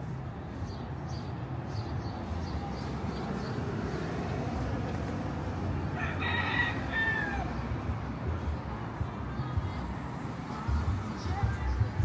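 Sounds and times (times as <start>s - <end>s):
rooster crowing: 5.9s - 7.6s.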